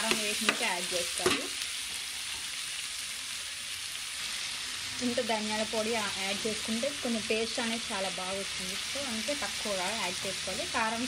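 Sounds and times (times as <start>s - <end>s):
woman talking: 0.0s - 1.6s, 5.0s - 11.0s
meat sizzling in oil: 0.0s - 11.0s.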